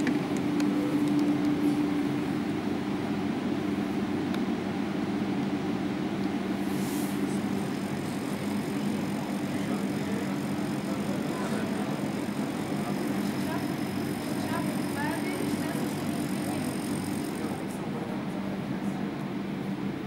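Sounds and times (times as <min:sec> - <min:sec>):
low mechanical hum with hiss: 0:00.0 - 0:20.0
faint distant voices: 0:07.2 - 0:19.4.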